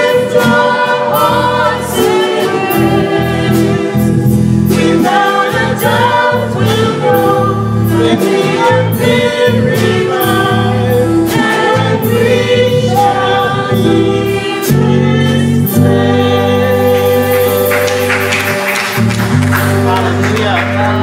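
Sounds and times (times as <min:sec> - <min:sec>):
drum kit with cymbals: 0:00.0 - 0:20.0
bass guitar: 0:00.0 - 0:21.0
choir singing gospel: 0:00.0 - 0:21.0
keyboard: 0:00.0 - 0:21.0.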